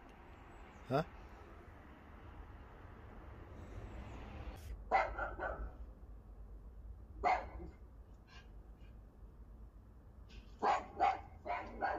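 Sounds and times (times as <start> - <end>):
dog barking: 4.9 - 5.8, 7.2 - 7.8, 10.6 - 11.9.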